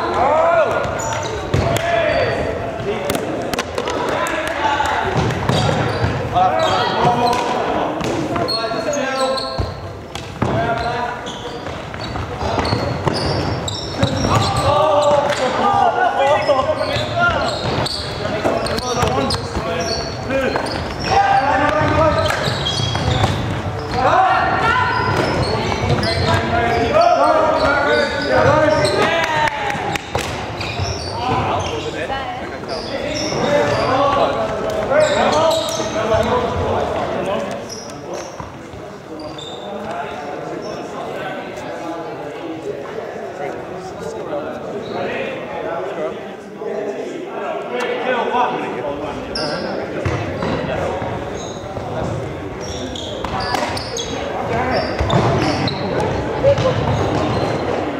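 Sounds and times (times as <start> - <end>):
players shouting in sports hall: 0.0 - 9.8, 10.4 - 37.8.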